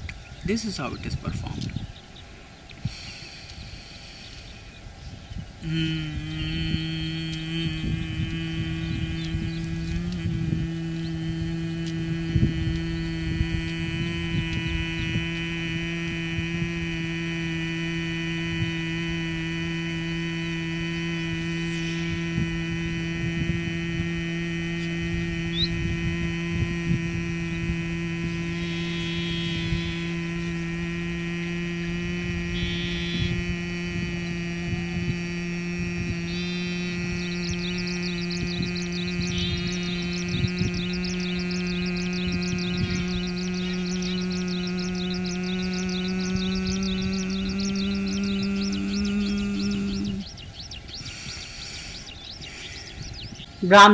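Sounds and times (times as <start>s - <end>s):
man humming low tone: 0.0s - 1.8s, 2.7s - 53.9s.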